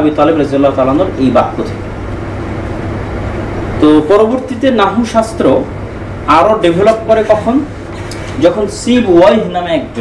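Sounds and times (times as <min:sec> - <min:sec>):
man talking: 0:00.0 - 0:01.8, 0:03.8 - 0:05.7, 0:06.3 - 0:07.8, 0:08.4 - 0:10.0
steady low hum: 0:00.0 - 0:10.0.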